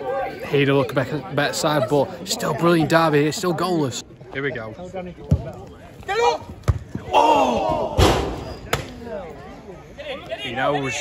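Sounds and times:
football being kicked: 0:06.6 - 0:07.0.

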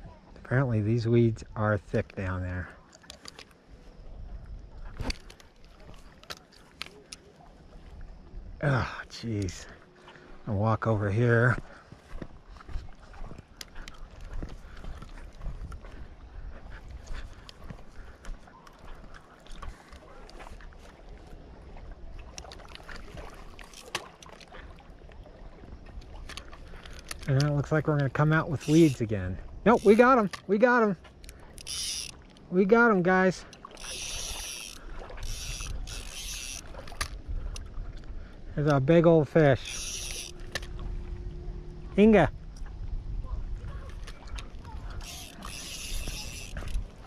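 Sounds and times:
fishing reel clicking and rattling: 0:02.9 - 0:03.6, 0:22.3 - 0:24.5, 0:26.2 - 0:30.6, 0:31.2 - 0:32.9, 0:33.5 - 0:37.7, 0:38.6 - 0:40.8, 0:43.7 - 0:47.0
wind rumble on microphone: 0:03.7 - 0:06.1, 0:11.1 - 0:23.6, 0:34.9 - 0:38.6, 0:39.6 - 0:47.0.

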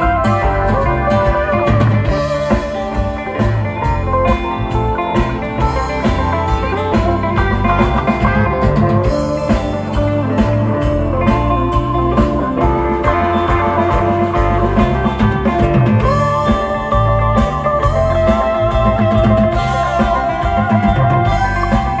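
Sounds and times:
live band playing funk: 0:00.0 - 0:22.0.

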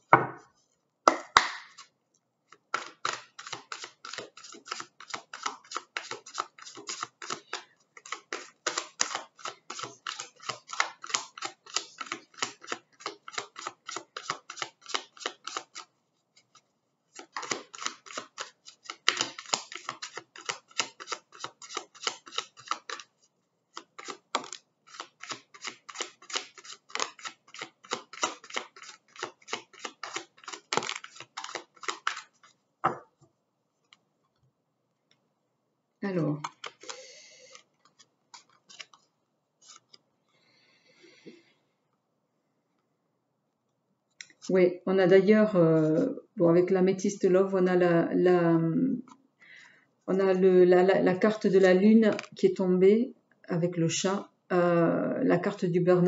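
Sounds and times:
cards knocking: 0:01.1 - 0:01.8, 0:02.7 - 0:15.8, 0:17.1 - 0:23.0, 0:23.8 - 0:33.1, 0:36.4 - 0:39.0
cards shuffled by hand: 0:02.7 - 0:33.0, 0:36.4 - 0:40.0, 0:52.1 - 0:52.4.

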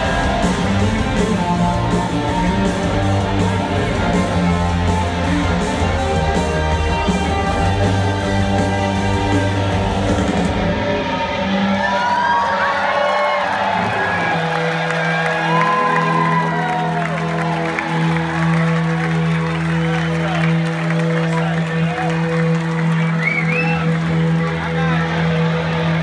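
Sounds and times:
audience cheering and applauding: 0:00.0 - 0:10.8, 0:11.4 - 0:26.0
live rock band playing: 0:00.0 - 0:12.4, 0:13.7 - 0:26.0.

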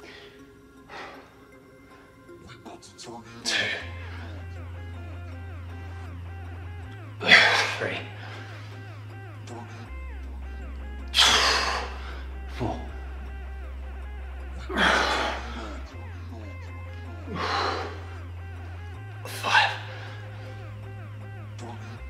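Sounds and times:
background music with bass: 0:00.0 - 0:22.0
man breathing forcefully: 0:11.1 - 0:12.7, 0:14.6 - 0:15.9, 0:17.1 - 0:20.7.

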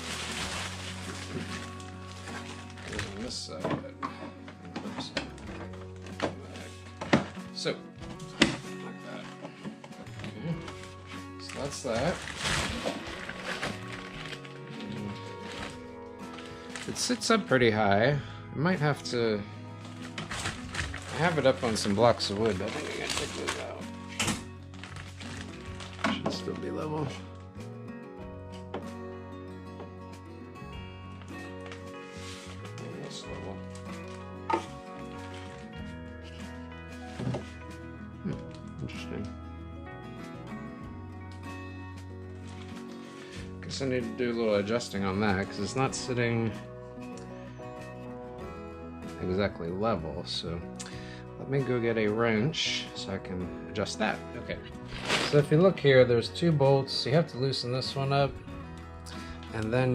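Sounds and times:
background music: 0:00.0 - 0:59.9.

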